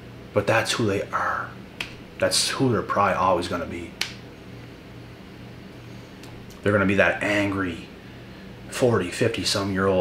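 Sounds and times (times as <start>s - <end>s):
low electrical hum with hiss: 0.0s - 10.0s.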